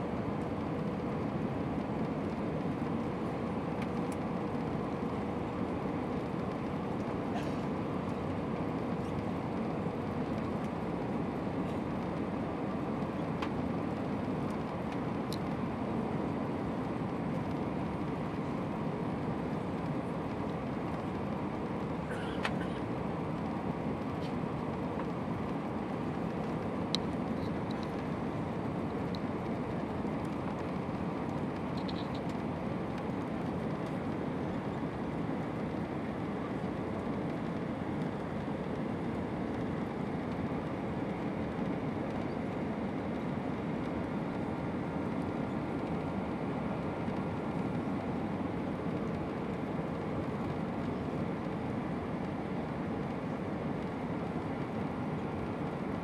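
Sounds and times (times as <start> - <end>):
airliner cabin engine and airflow noise: 0.0 - 56.0.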